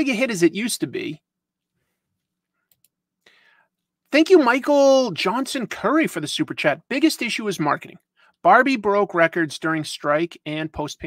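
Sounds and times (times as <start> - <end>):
speech: 0.0 - 1.2, 4.1 - 11.0
faint clicks: 2.6 - 3.0
faint breathy sound: 3.2 - 3.9.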